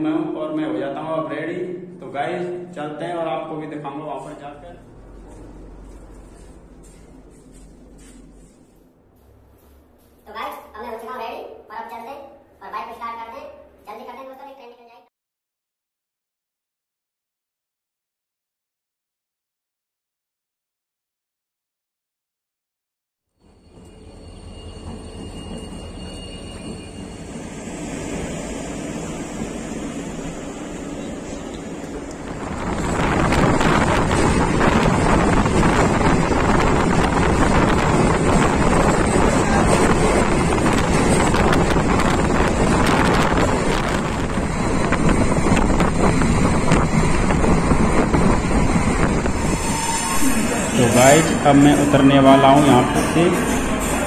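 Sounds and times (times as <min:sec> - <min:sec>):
train wheels rumbling on rail: 0:23.6 - 0:54.0
wind buffeting microphone: 0:31.8 - 0:49.8.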